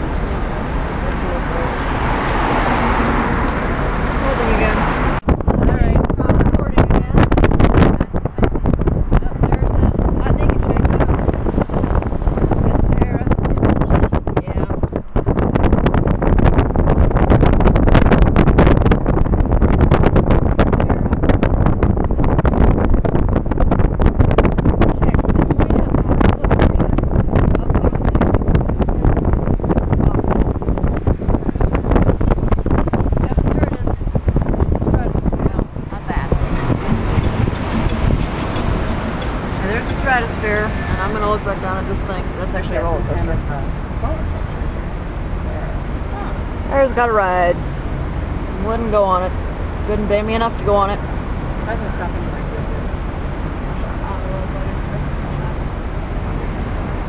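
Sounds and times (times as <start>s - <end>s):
car road noise: 0.0s - 57.0s
wind buffeting a microphone: 0.0s - 57.0s.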